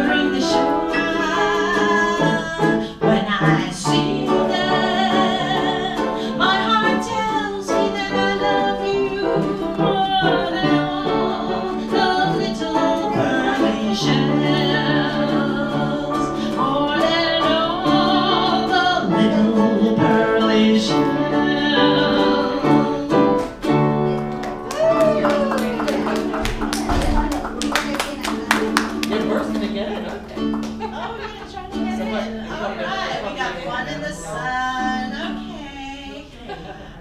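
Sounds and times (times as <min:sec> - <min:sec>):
woman singing with vibrato: 0:00.0 - 0:23.6, 0:31.0 - 0:36.6
piano: 0:00.0 - 0:33.6
ukulele: 0:00.0 - 0:36.6.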